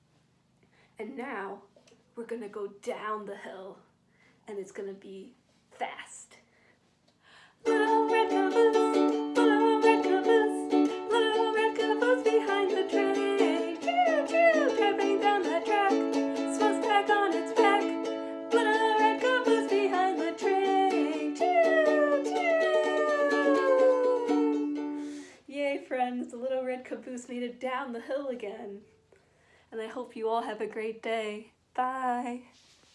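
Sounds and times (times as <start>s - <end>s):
ukulele strummed: 7.6s - 25.2s
woman singing: 7.6s - 28.8s.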